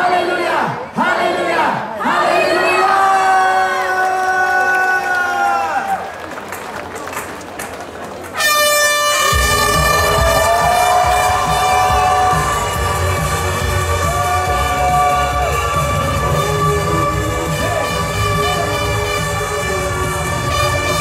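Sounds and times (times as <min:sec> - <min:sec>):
air horn long steady tone: 0:08.4 - 0:21.0.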